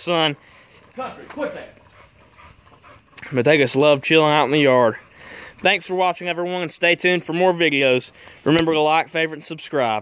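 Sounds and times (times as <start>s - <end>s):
dog panting: 0.0s - 6.5s.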